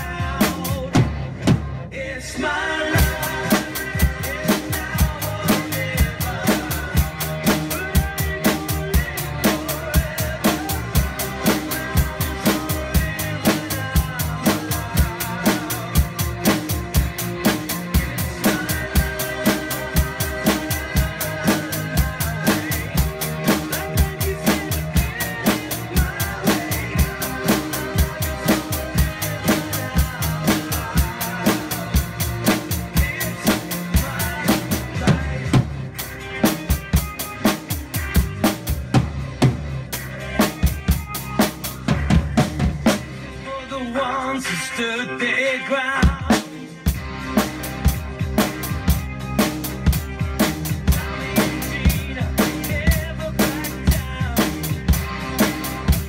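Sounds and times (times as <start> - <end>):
drum kit steady beat: 0.0 - 1.9, 2.9 - 43.4, 45.9 - 56.0
pop song backing track: 0.0 - 56.0.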